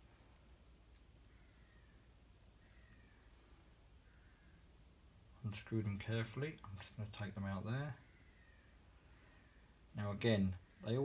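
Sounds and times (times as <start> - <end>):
faint small clicks: 0.0 - 3.6.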